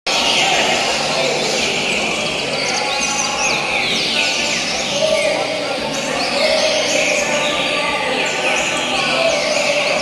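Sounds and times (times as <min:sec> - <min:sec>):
chorus of birdsong: 0:00.1 - 0:10.0.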